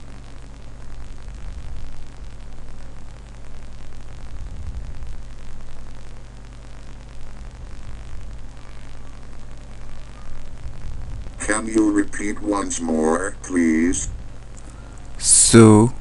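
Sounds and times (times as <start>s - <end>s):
background hiss: 0.0s - 16.0s
low electrical hum: 0.0s - 16.0s.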